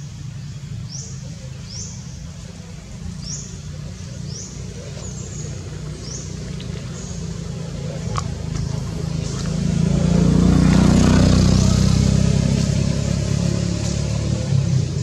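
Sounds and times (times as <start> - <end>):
low motor rumble: 0.0 - 15.0.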